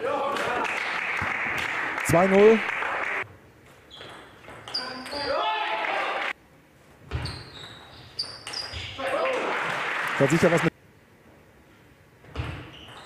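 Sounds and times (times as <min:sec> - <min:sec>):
applause: 0:00.4 - 0:03.2, 0:05.7 - 0:06.3, 0:09.3 - 0:10.7.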